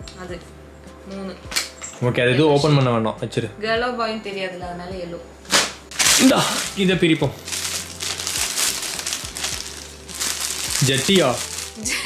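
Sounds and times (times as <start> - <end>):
plastic mailer bag crinkling: 5.9 - 12.0.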